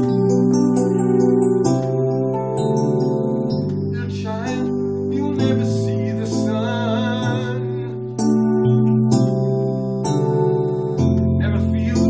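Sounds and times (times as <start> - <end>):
electronic keyboard playing chords: 0.0 - 12.0.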